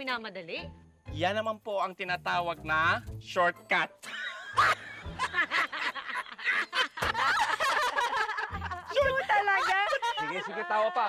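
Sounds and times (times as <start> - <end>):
man laughing heartily: 4.0 - 11.0.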